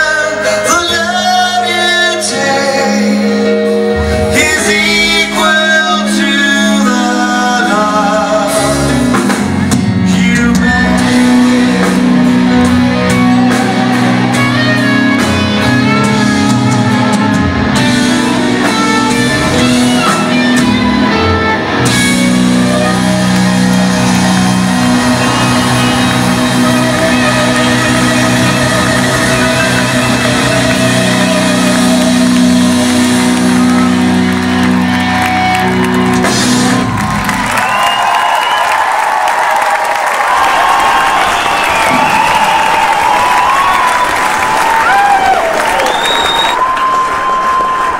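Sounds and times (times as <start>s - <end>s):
live rock band: 0.0s - 47.9s
crowd cheering and whooping: 11.0s - 47.9s.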